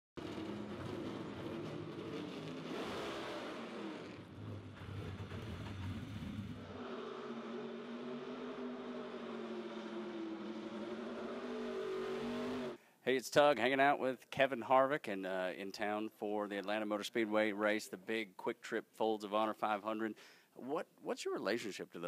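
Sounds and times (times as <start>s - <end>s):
race car engine running: 0.2s - 12.8s.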